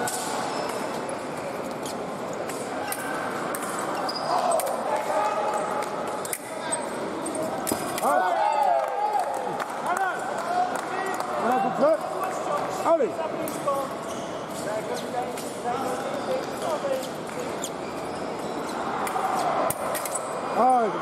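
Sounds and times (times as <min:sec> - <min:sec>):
high sliding squeaks: 0:14.0 - 0:15.2.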